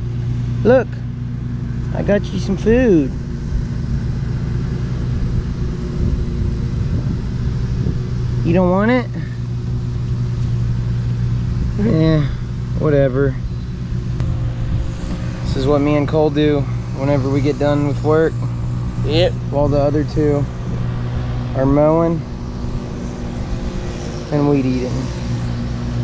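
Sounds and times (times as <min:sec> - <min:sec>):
steady low engine hum: 0:00.0 - 0:26.0
wind rumble on microphone: 0:02.4 - 0:26.0.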